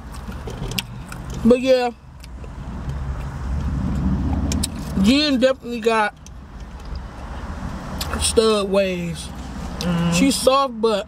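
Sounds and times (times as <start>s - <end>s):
car cabin rumble: 2.4s - 7.0s.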